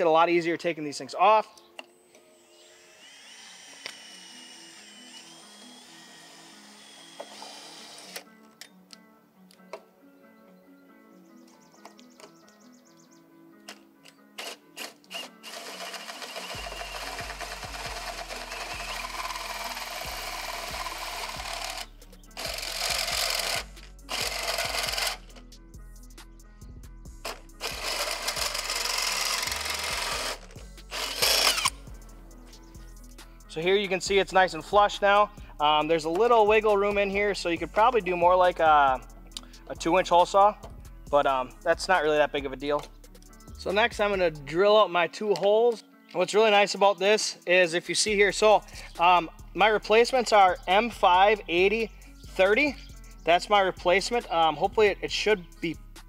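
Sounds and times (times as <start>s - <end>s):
cordless drill cutting with hole saw: 2.3s - 8.2s, 14.4s - 25.4s, 27.2s - 31.8s
background music with bass line: 16.5s - 44.7s, 47.9s - 56.0s.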